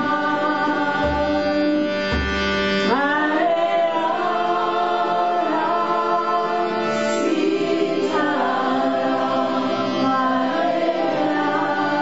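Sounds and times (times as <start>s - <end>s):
group devotional chanting: 0.0s - 2.2s, 2.8s - 12.0s
harmonium drone: 0.0s - 12.0s.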